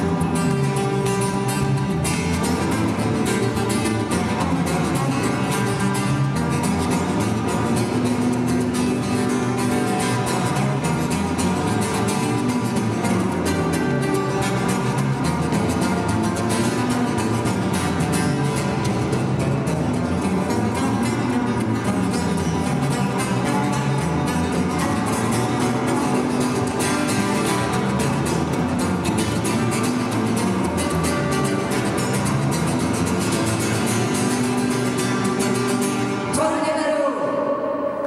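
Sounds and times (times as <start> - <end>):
bass guitar notes: 0.0 - 36.5
acoustic guitar strumming: 0.0 - 38.0.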